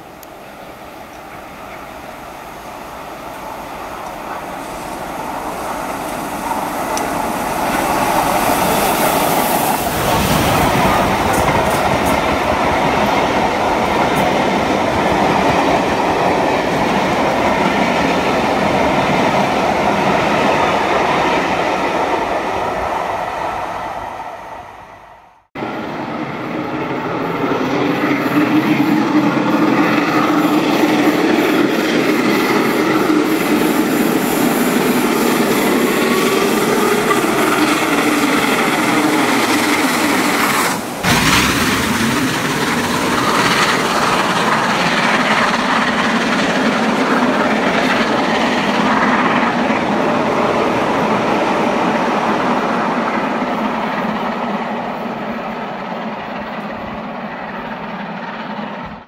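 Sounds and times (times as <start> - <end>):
train coaches clattering on rails: 0.0 - 23.1, 26.1 - 59.0.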